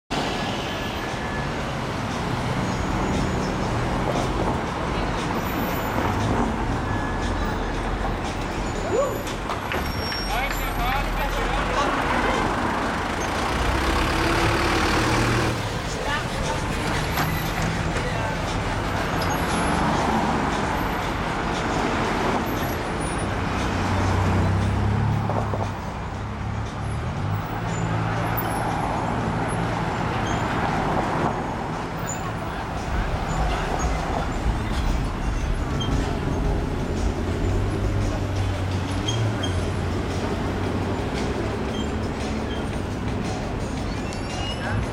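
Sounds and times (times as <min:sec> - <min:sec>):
city street traffic: 0:00.1 - 0:44.9
heavy vehicle engine hum: 0:00.1 - 0:44.9.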